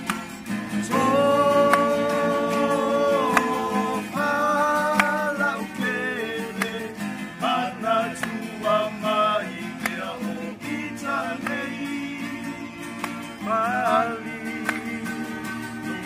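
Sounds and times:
acoustic guitars strummed: 0.0s - 16.0s
men singing together: 0.8s - 16.0s.

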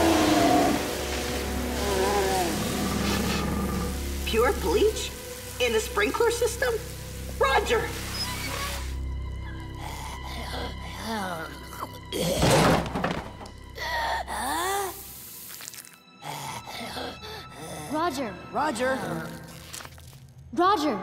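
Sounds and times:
sprinklers spraying hiss: 0.0s - 9.1s, 14.8s - 16.0s
background music: 0.0s - 21.0s.

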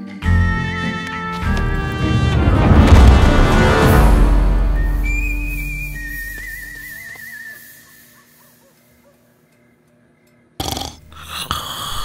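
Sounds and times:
low boom: 1.4s - 6.4s
sudden loud burst: 1.5s - 6.8s
high whistle-like tones: 4.4s - 8.4s.

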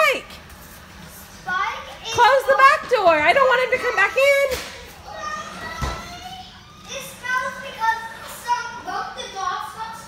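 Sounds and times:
children's voices: 3.6s - 10.0s.

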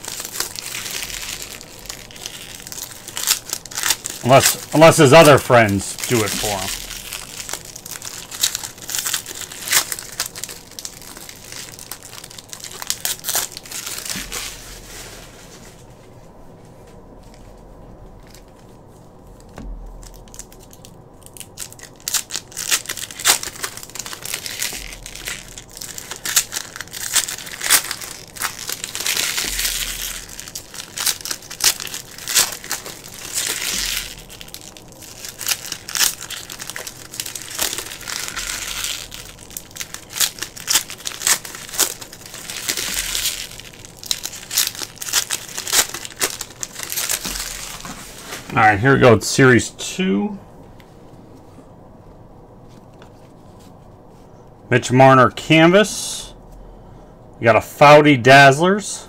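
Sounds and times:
cards being handled: 0.0s - 11.0s
foil wrappers crinkling and tearing: 0.0s - 15.9s, 18.2s - 48.9s.

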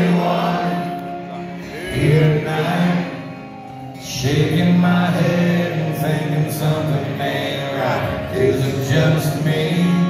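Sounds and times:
strummed acoustic guitars: 0.0s - 10.0s.

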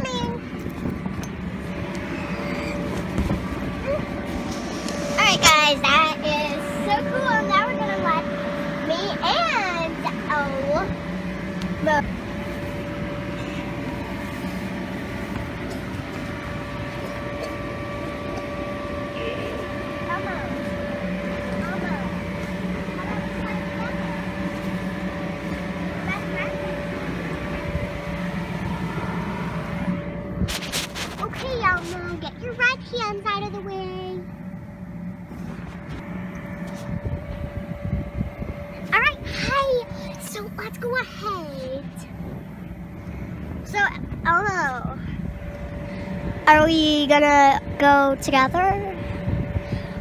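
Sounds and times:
electric blower humming: 0.0s - 50.0s.

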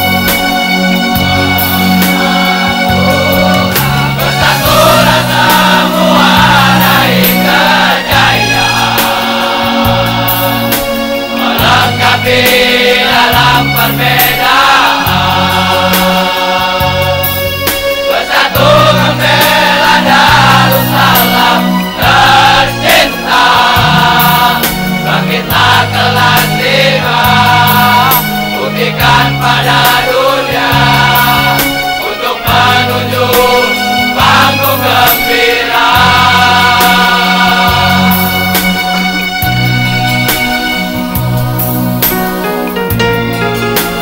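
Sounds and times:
bass line: 0.0s - 17.9s, 18.5s - 43.8s
male choir singing loudly: 0.1s - 39.7s.

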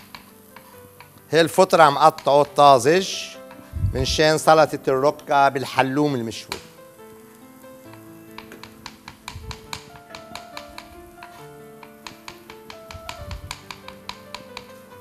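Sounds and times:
background music with melody: 0.0s - 15.0s
knife tapping on cutting board: 8.4s - 14.8s.

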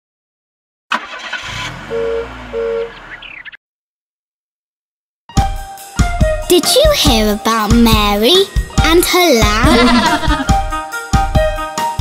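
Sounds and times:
cartoon engine starting and revving: 0.9s - 3.6s.

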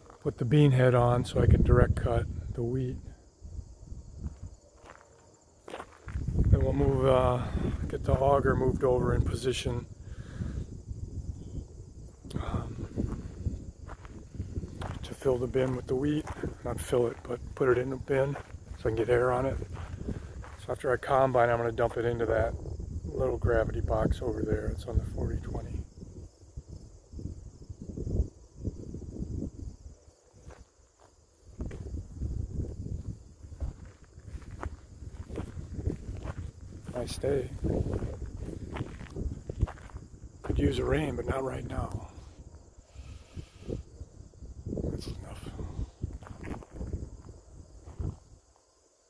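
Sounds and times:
wind buffeting microphone: 0.0s - 30.6s, 31.4s - 48.5s
footsteps through grass: 4.2s - 6.8s, 13.0s - 20.6s, 32.9s - 40.6s.

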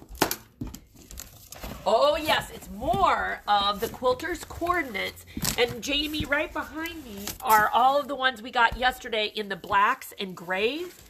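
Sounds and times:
cardboard and plastic rustling: 0.0s - 11.0s
scissors cutting plastic strapping: 5.3s - 7.9s.

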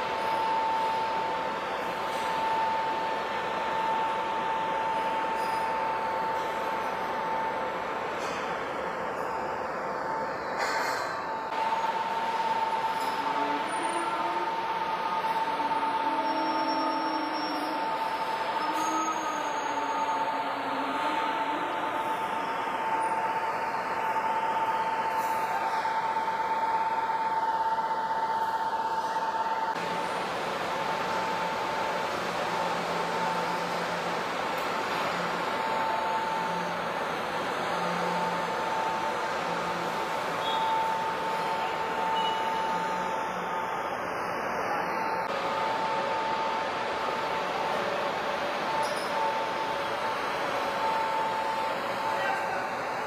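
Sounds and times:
constant high whine: 0.0s - 53.0s
machinery rumble and hiss: 0.0s - 53.0s.

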